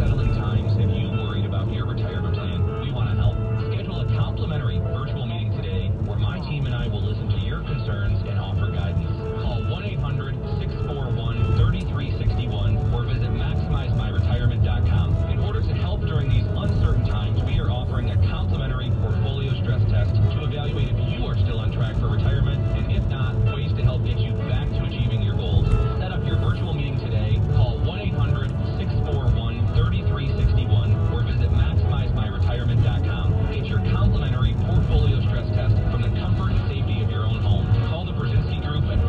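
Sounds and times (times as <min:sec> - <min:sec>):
radio voice over music: 0:00.0 - 0:39.0.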